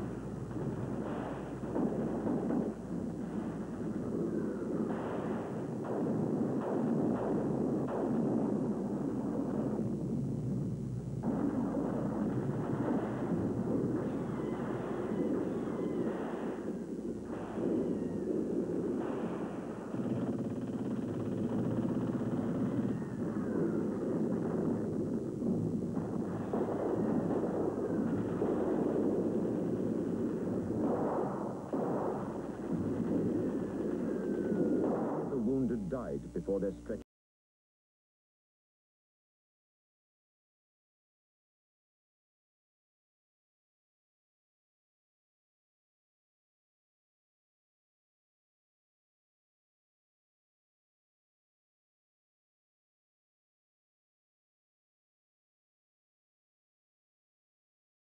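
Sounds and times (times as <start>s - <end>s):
gunfire: 0.0s - 36.7s
artillery explosions: 0.0s - 36.8s.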